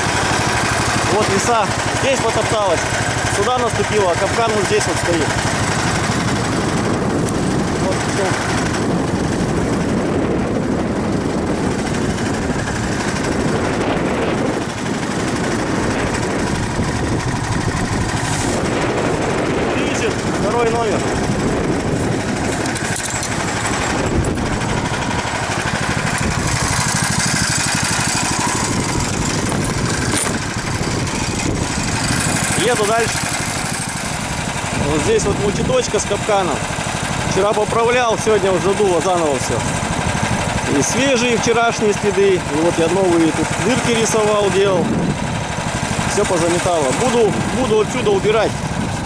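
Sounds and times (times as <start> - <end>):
small engine idling: 0.0 - 49.0.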